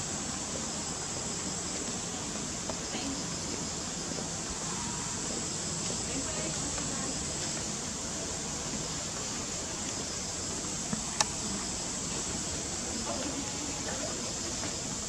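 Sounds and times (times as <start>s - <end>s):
background hiss: 0.0s - 15.0s
faint indistinct voices: 0.6s - 15.0s.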